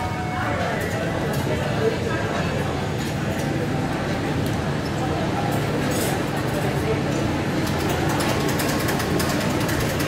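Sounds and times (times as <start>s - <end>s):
ice cream machine whirring: 0.0s - 10.0s.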